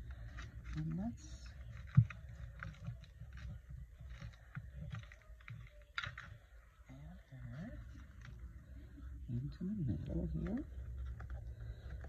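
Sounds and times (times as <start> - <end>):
paper cut-outs tapping and rustling: 0.0 - 6.6.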